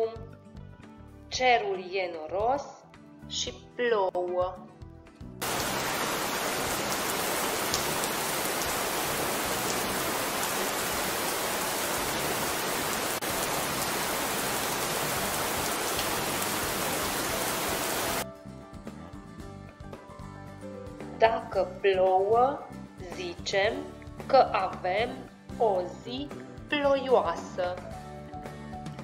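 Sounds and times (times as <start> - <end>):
soft background music: 0.0 - 8.3, 13.3 - 29.0
steady rain downpour: 5.4 - 18.2.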